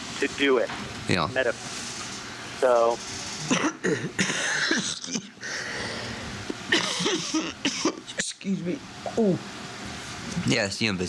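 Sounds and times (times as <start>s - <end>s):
person coughing: 3.5s - 5.4s, 6.7s - 8.1s.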